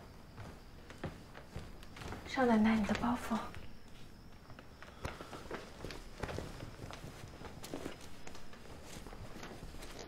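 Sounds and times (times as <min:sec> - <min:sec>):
soft footsteps on hard floor: 0:00.0 - 0:10.0
cloth rustle: 0:00.4 - 0:10.0.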